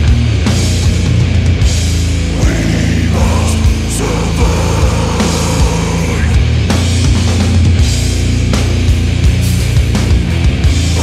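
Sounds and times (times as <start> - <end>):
distorted guitar and bass drone: 0.0 - 11.0
steady drum beat: 0.0 - 11.0.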